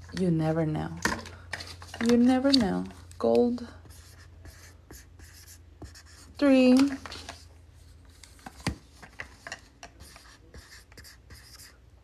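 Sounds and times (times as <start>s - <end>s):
marker scratching on plastic: 3.8s - 7.4s, 9.8s - 11.8s.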